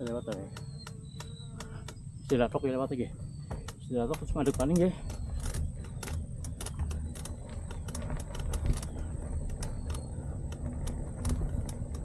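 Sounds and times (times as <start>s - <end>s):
bike clicks and rattles: 0.0s - 2.5s, 3.5s - 12.0s
bike tyres rumbling on dirt: 3.5s - 12.0s.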